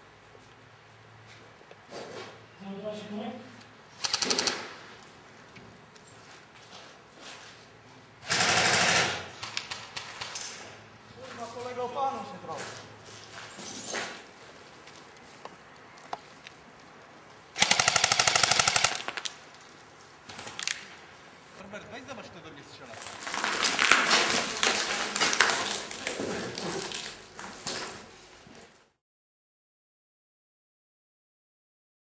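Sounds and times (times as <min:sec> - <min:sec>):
airsoft rifle full-auto burst: 0:04.0 - 0:04.7, 0:08.2 - 0:09.8, 0:17.6 - 0:19.2.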